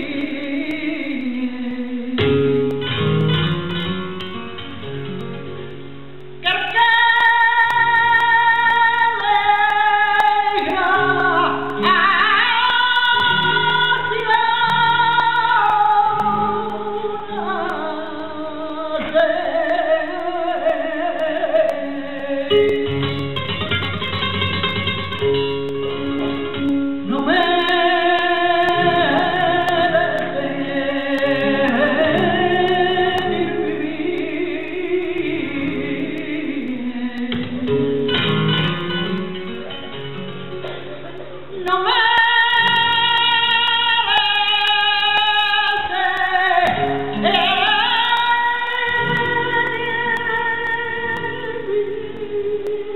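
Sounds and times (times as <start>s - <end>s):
woman singing melismas: 0.0s - 3.4s, 6.4s - 23.4s, 26.4s - 39.2s, 41.6s - 52.9s
flamenco guitar: 0.0s - 52.9s.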